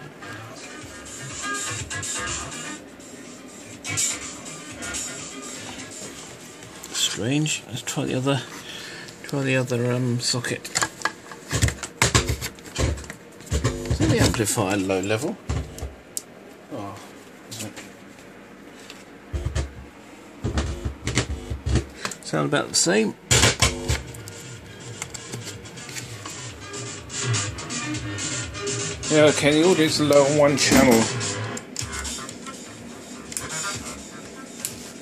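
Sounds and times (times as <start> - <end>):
radio music through speaker: 0.0 - 15.9, 19.3 - 19.8, 20.4 - 35.0
low amplifier buzz: 11.4 - 34.8.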